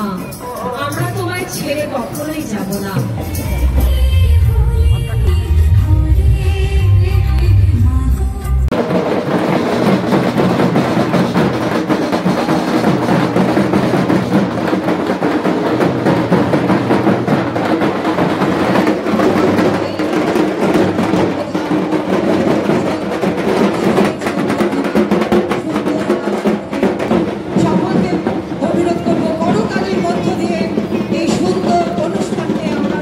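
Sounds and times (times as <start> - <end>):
bass-heavy music with singing: 3.1 - 8.7
rapid drumming: 8.6 - 33.0.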